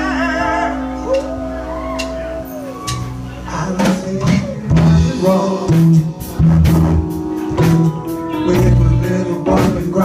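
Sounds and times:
electric bass: 0.0 - 10.0
keyboard notes: 0.0 - 10.0.

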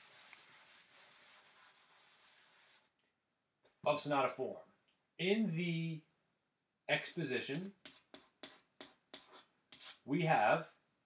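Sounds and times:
chalk writing on chalkboard: 0.0 - 2.9, 7.5 - 10.1.

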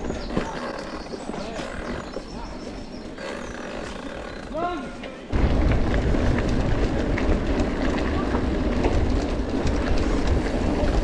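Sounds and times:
bike drivetrain: 0.0 - 11.0
bike tyres rumbling on dirt: 0.0 - 11.0
wind buffeting microphone: 5.3 - 11.0.

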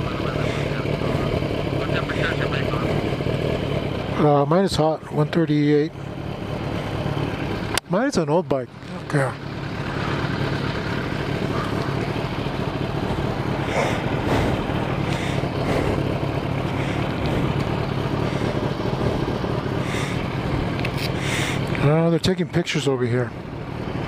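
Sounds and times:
motorcycle engine running: 0.0 - 24.0.

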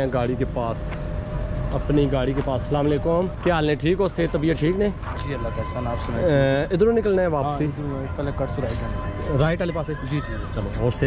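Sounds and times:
men talking: 0.0 - 1.0, 1.6 - 11.0.

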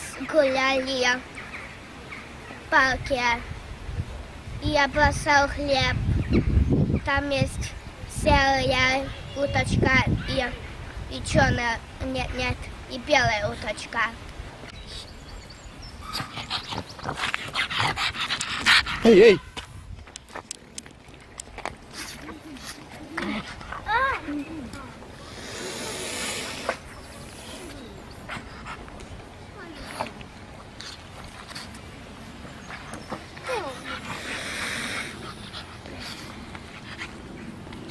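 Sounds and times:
dog sniffing and snuffling: 32.6 - 37.9.

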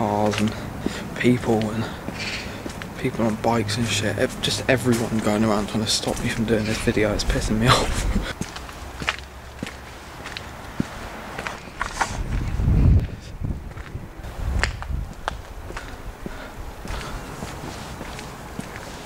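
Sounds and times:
footsteps on pavement: 0.0 - 19.0
handheld camera clicks and rubbing: 11.7 - 12.3.

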